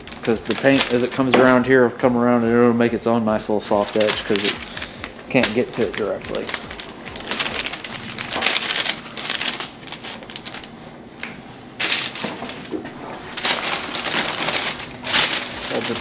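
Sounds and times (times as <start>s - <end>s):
paper crinkling: 0.0s - 16.0s.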